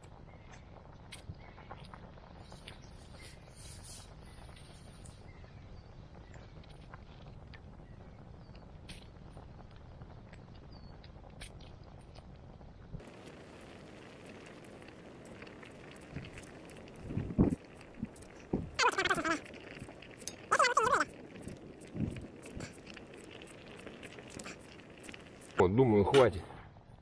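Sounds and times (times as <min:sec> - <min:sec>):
campfire crackling: 0:00.0 - 0:27.0
loud pitched falling calls: 0:20.5 - 0:21.1.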